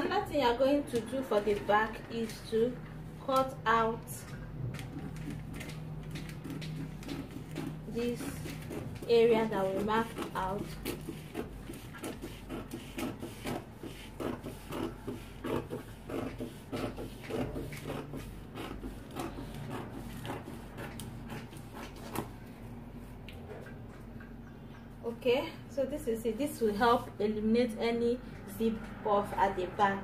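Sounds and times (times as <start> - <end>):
scissors snipping paper: 4.8 - 22.3.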